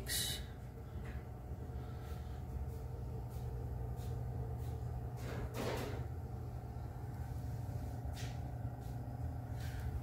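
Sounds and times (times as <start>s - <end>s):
low indoor hum: 0.0s - 10.0s.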